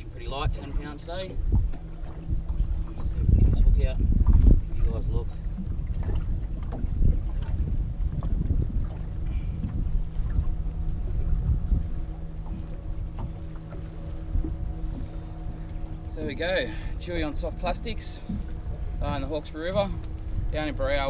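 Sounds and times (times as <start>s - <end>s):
steady low motor hum: 0.0s - 21.0s
wind buffeting microphone: 0.0s - 21.0s.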